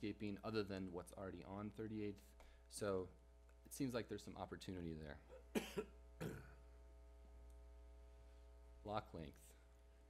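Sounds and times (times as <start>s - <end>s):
faint steady hum: 0.0s - 10.0s
man coughing: 5.3s - 6.7s.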